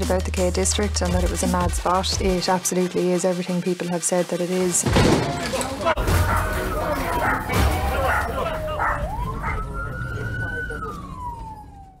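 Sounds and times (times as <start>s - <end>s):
police siren wailing: 6.0s - 12.0s.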